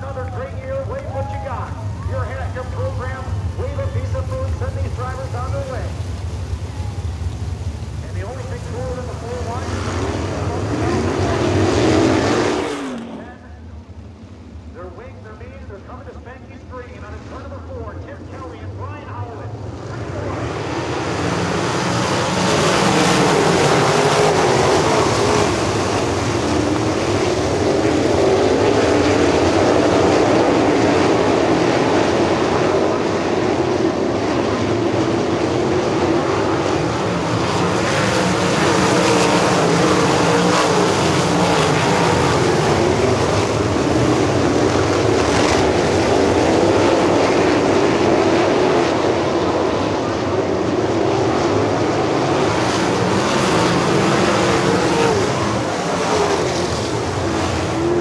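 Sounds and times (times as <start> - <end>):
racing car engines at full throttle: 0.0 - 58.0.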